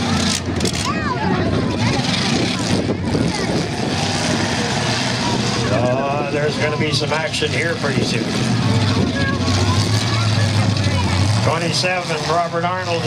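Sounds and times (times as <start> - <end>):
truck engines revving: 0.0 - 13.0
voices: 0.0 - 13.0.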